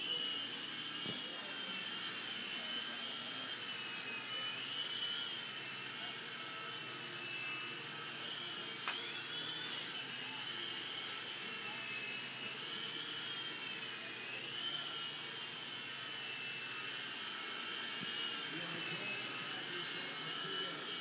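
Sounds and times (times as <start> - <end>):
toy helicopter motor whine: 0.0 - 21.0.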